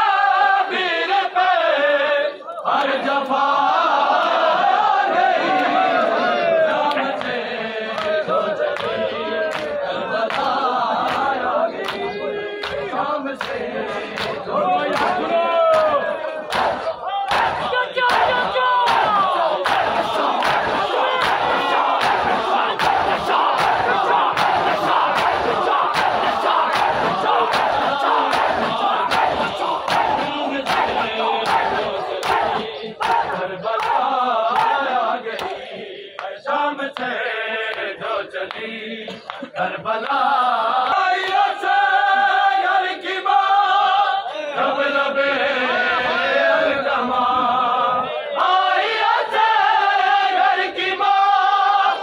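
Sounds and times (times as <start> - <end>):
lead voice singing: 0.0 - 52.0
men chanting in unison: 0.0 - 52.0
hands slapping chests: 8.0 - 36.4.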